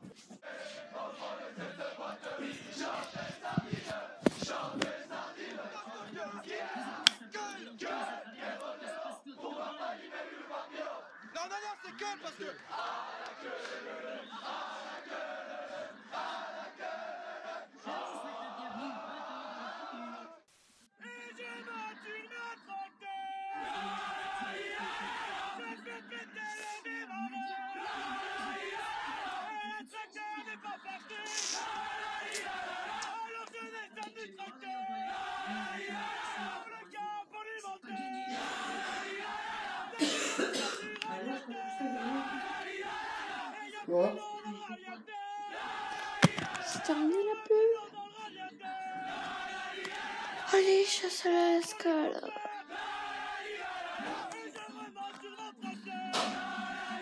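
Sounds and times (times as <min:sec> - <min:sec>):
men chanting and shouting: 0:00.0 - 0:57.0
young men shouting war cry: 0:21.2 - 0:26.4, 0:27.0 - 0:47.2, 0:52.3 - 0:54.7.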